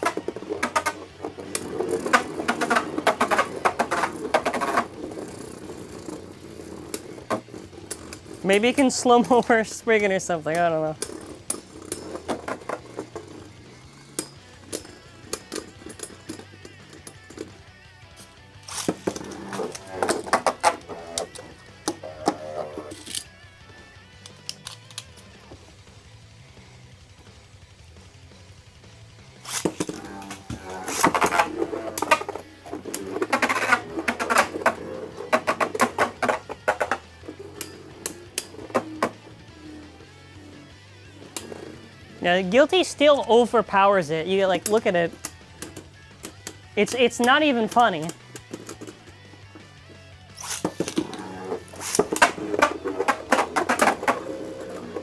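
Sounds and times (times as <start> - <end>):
music: 0.0 - 55.0.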